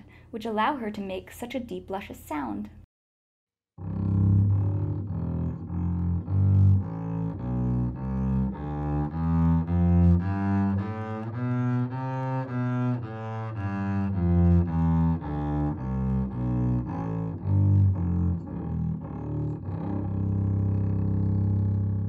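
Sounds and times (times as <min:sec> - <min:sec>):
bowed double bass melody: 0:03.8 - 0:22.0.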